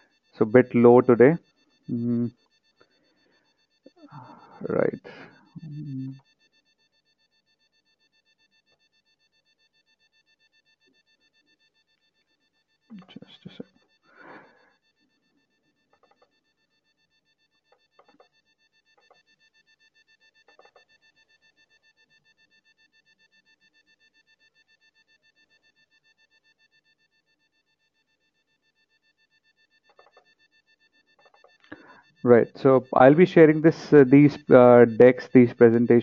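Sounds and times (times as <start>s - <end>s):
faint high-pitched electronic tones: 0.0s - 36.0s.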